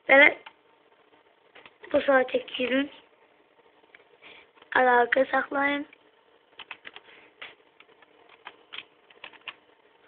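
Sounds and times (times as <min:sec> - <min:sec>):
keyboard keystroke clicks: 0:06.6 - 0:07.0.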